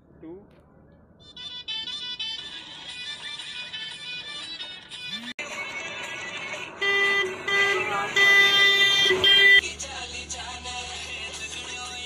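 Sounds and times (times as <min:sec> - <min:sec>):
vehicle horn honking: 0:06.7 - 0:09.6.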